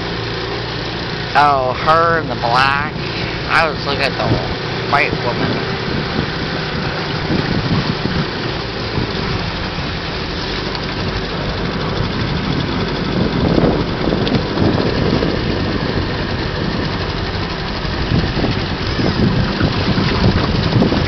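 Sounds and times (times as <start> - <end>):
outboard motor running: 0.0 - 21.0.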